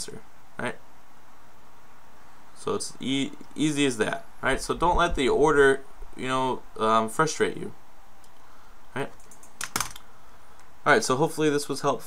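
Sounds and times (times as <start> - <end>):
person speaking: 2.6 - 7.8
computer keyboard clicks: 9.1 - 10.0.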